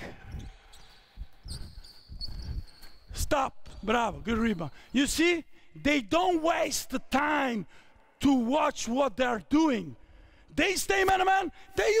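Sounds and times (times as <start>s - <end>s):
sneaker squeak: 0.0s - 5.0s.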